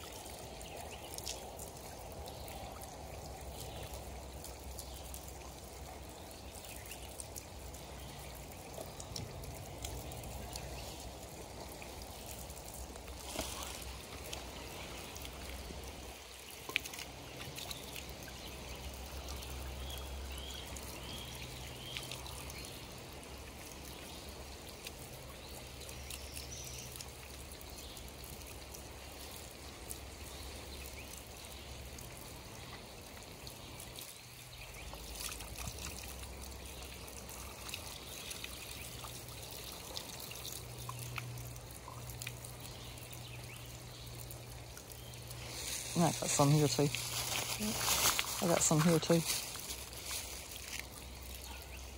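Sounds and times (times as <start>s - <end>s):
water pouring from pipes: 0.0s - 51.9s.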